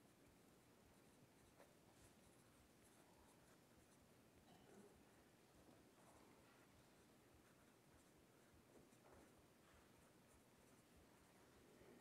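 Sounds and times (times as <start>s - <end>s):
pencil scratching on card: 0.6s - 4.2s, 6.0s - 11.5s.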